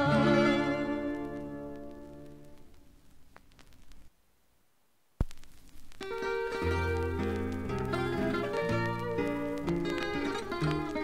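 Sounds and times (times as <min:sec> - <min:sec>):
vinyl surface clicks: 0:05.2 - 0:11.0.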